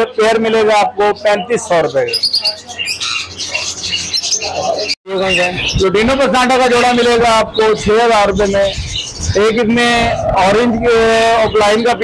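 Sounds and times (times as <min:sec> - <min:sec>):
lovebirds chirping: 0:00.0 - 0:12.0.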